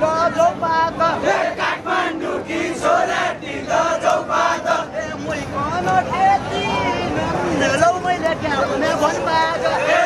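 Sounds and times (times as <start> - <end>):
crowd of men chanting and shouting: 0.0 - 10.0.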